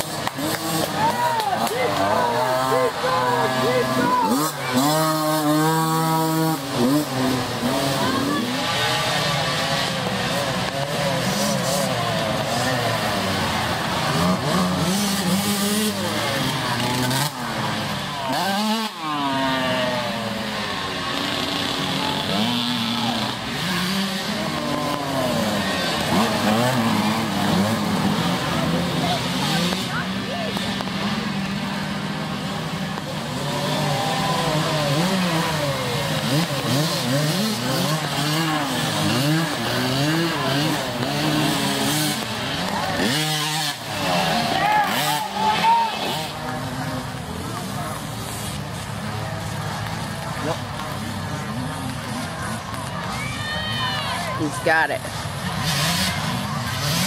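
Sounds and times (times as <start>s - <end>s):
dirt bike passing close: 0.0s - 57.0s
dirt-bike engines revving: 0.0s - 57.0s.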